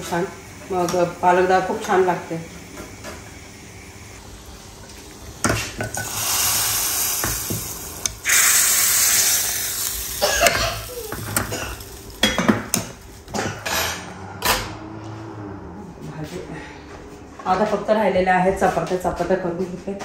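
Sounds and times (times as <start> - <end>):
loud sizzle as oil is poured: 0.0 - 13.3
hot oil sizzling: 0.0 - 14.0.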